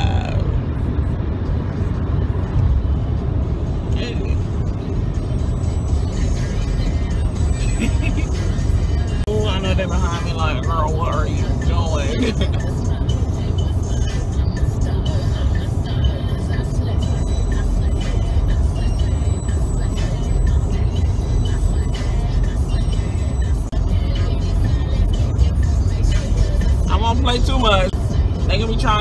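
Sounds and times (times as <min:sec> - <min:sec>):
music from car stereo: 0:00.0 - 0:29.0
road and engine rumble: 0:00.0 - 0:29.0.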